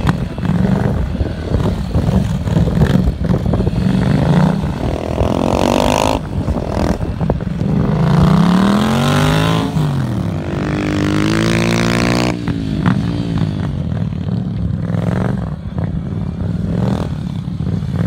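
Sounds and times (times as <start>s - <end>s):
motorcycle engines revving: 0.0s - 18.0s.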